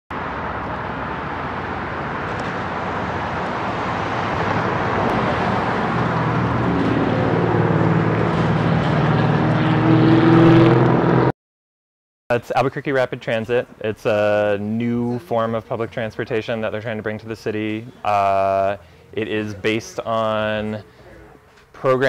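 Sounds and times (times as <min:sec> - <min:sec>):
bus engine humming: 0:00.1 - 0:11.3, 0:13.6 - 0:21.7
street traffic noise: 0:00.1 - 0:11.3, 0:12.3 - 0:22.0.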